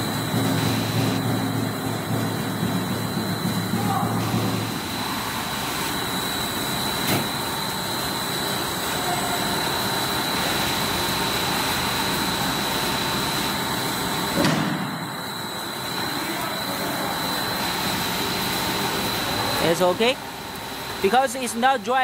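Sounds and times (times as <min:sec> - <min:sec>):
high-pitched machine whine: 0:00.0 - 0:22.0
steady machinery noise: 0:00.0 - 0:22.0.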